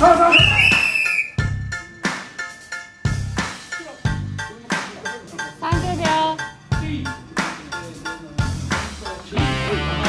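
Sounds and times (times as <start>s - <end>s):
music with drum beat: 0.0s - 10.0s
whistle blast: 0.2s - 1.6s.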